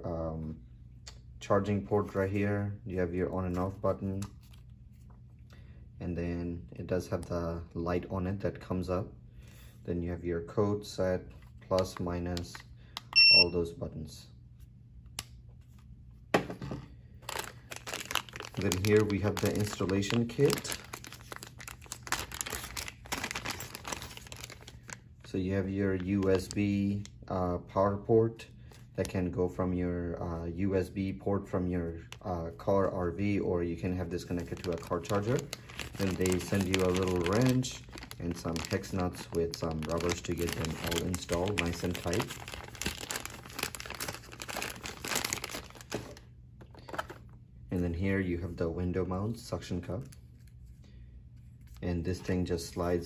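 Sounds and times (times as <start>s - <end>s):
plastic bag crinkling: 17.2s - 25.0s, 33.8s - 47.3s.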